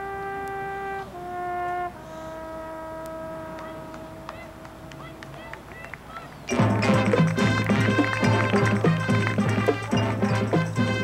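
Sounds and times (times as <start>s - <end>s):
loud brass chord: 0.0s - 5.0s, 6.5s - 11.0s
marching band sustained note: 0.0s - 11.0s.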